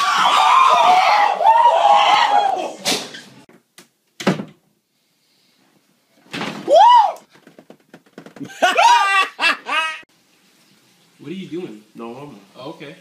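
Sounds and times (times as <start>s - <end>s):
person screaming: 6.7s - 7.2s, 8.6s - 9.4s.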